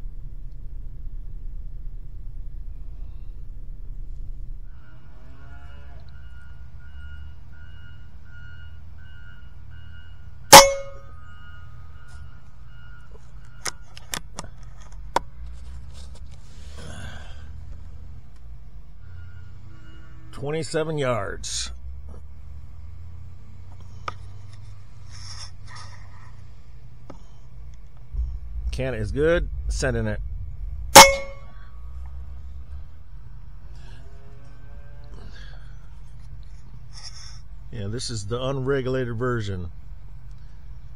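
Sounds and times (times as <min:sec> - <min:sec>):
brief ringing: 0:10.5 - 0:11.3, 0:31.0 - 0:31.6.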